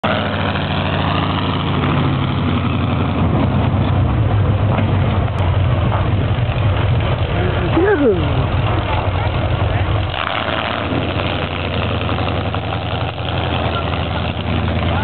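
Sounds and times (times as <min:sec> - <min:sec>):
truck engine idling: 0:00.0 - 0:15.0.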